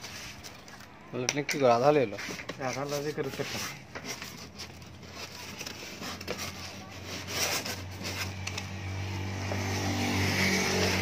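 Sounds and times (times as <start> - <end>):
cardboard and foam scraping: 0.0 - 0.8, 1.7 - 8.8.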